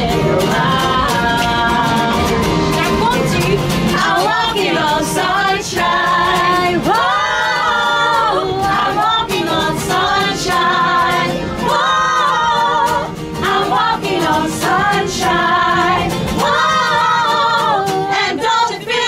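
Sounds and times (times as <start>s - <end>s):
women singing in harmony: 0.0s - 19.0s.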